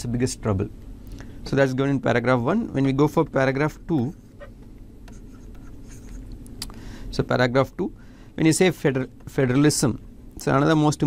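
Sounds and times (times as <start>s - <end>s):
low room hum: 0.0s - 11.0s
stylus scratching on pen tablet: 5.1s - 6.2s.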